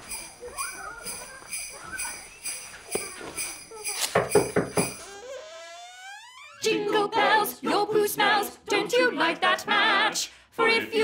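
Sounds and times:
sleigh bells jingling: 0:00.0 - 0:05.3
rising tone: 0:04.9 - 0:06.9.

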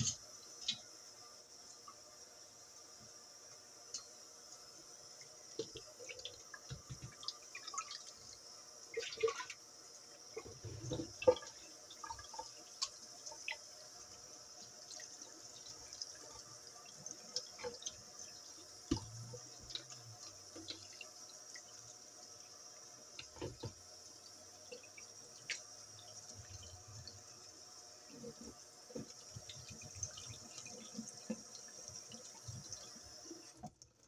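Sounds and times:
tap water stream hissing: 0:00.0 - 0:34.0
wet splashes and drips: 0:08.9 - 0:09.6.

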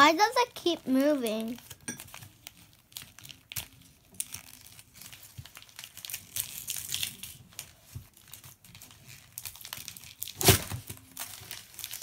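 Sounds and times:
wrapping paper crinkling and tearing: 0:00.0 - 0:12.0.

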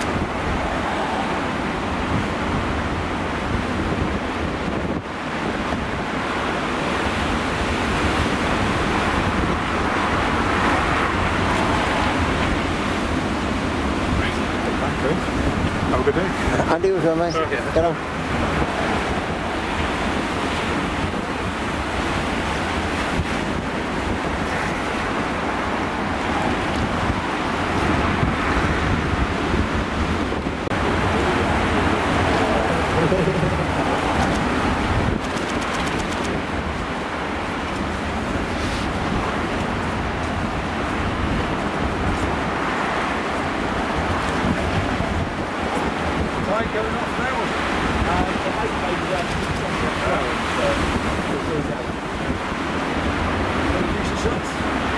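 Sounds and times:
storm surf breaking over rocks: 0:00.0 - 0:54.9
wind gusting across microphone: 0:00.0 - 0:54.9.

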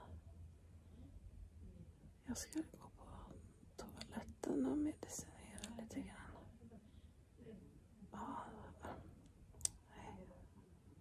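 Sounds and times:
breathy whispering: 0:02.2 - 0:07.2, 0:08.1 - 0:10.5.

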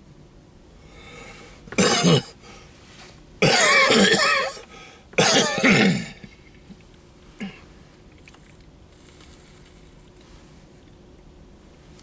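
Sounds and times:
man coughing: 0:01.8 - 0:02.4, 0:03.4 - 0:04.6, 0:05.2 - 0:06.4.

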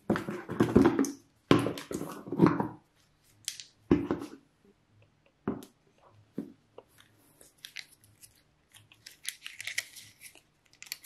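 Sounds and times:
wrapping crinkling: 0:06.9 - 0:11.0.

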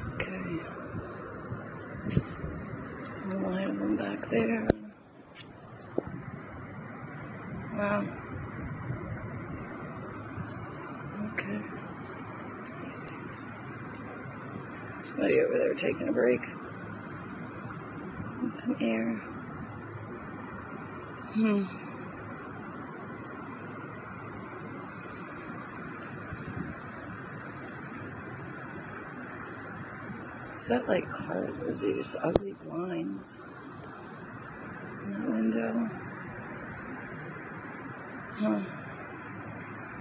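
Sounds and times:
wind on microphone: 0:00.0 - 0:20.7, 0:24.2 - 0:33.0
distant city traffic: 0:00.0 - 0:40.0.

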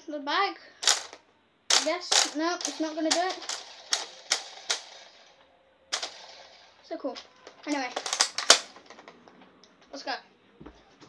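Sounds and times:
toy blaster plastic clicks: 0:00.8 - 0:05.3, 0:05.9 - 0:06.6, 0:07.2 - 0:09.0.

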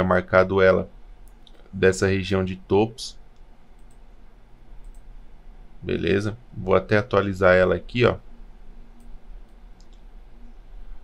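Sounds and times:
quiet room hum: 0:00.0 - 0:11.0
computer mouse clicks: 0:03.3 - 0:04.0, 0:04.8 - 0:05.1, 0:09.0 - 0:10.1.

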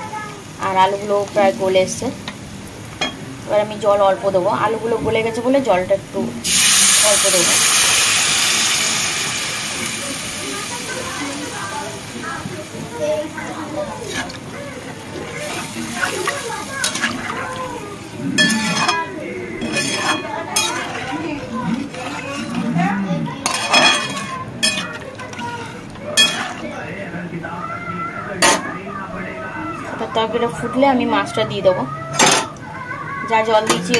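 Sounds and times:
water sizzling in hot pan: 0:00.0 - 0:22.6
metal spatula scraping pan: 0:13.9 - 0:14.4, 0:18.4 - 0:26.7.

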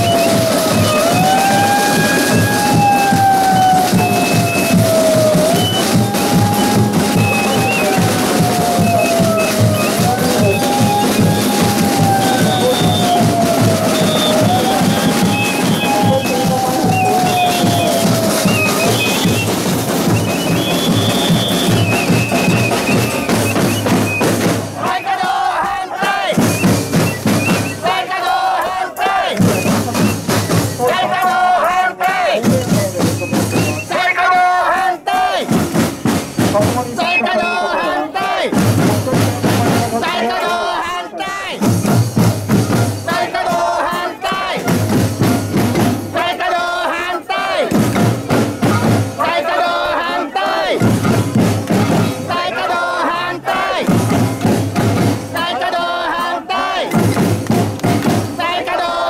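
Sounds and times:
crowd chanting slogans: 0:00.0 - 0:59.0
marching snare drums: 0:00.0 - 0:59.0.

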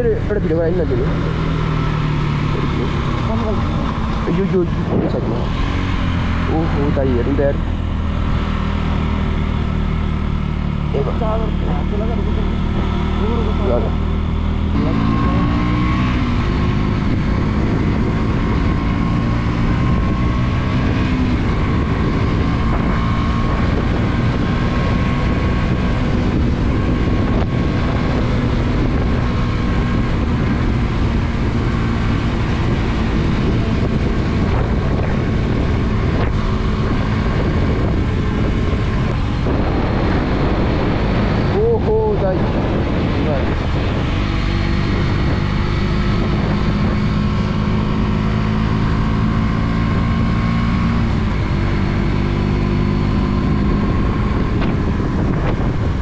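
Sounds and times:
road and wind noise: 0:00.0 - 0:56.0
vehicle engine running: 0:00.0 - 0:56.0.

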